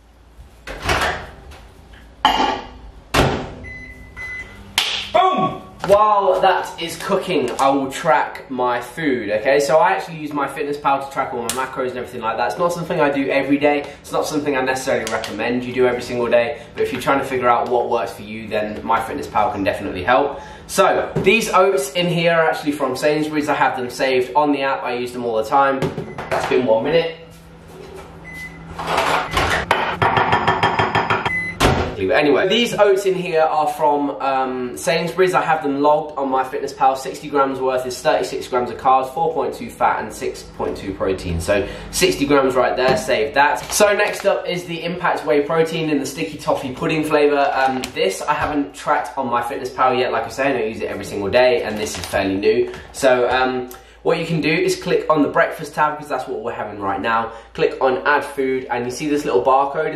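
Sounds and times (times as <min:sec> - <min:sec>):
microwave oven humming: 0:03.1 - 0:05.8, 0:26.1 - 0:32.3
keypad beeps: 0:03.6 - 0:04.6, 0:31.2 - 0:31.6.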